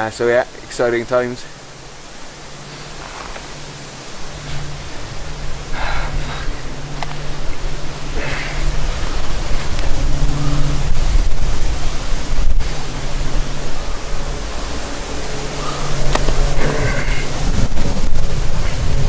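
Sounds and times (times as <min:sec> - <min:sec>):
wind rushing over microphone: 0:00.9 - 0:19.0.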